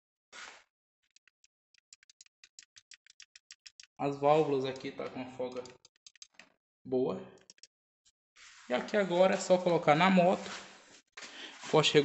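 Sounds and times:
rapid metallic clicking: 0:01.1 - 0:06.5, 0:07.4 - 0:07.7.

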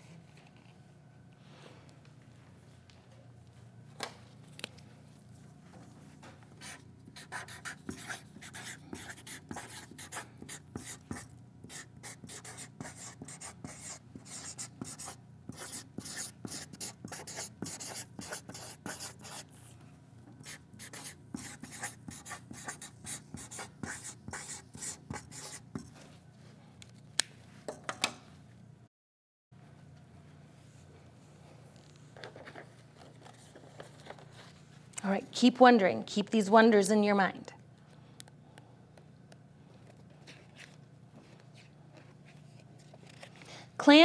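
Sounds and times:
marker writing on paper: 0:06.6 - 0:19.4, 0:20.4 - 0:26.0.

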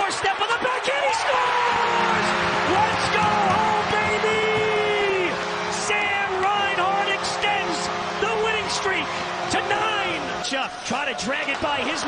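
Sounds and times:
crowd cheering: 0:00.0 - 0:12.0
excited shouting voices: 0:00.0 - 0:12.0
arena goal horn blaring: 0:01.3 - 0:12.0.

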